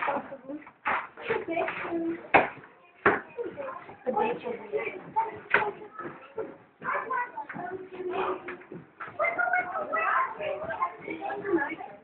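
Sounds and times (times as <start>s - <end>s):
children's voices: 1.2s - 12.0s.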